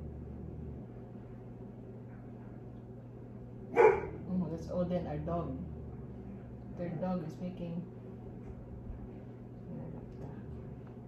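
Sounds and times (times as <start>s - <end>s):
dog barking: 3.7s - 4.2s.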